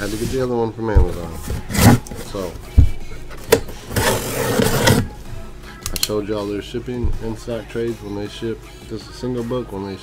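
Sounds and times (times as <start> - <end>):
knife cutting packing tape: 3.5 - 5.1.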